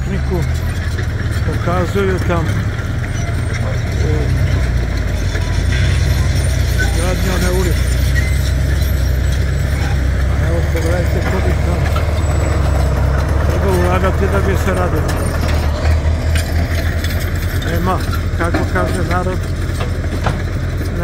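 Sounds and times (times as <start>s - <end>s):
engine running: 0.0s - 21.0s
faint voices: 0.0s - 21.0s.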